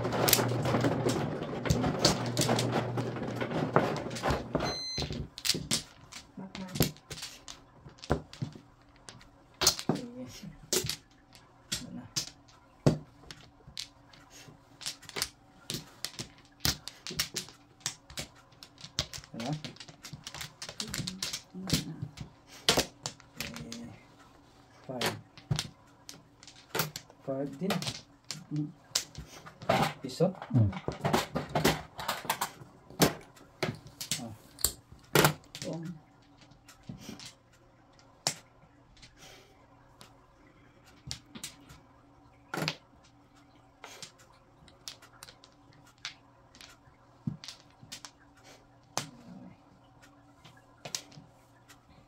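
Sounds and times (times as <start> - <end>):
mahjong tiles clacking: 0.0 - 39.2, 40.0 - 52.0.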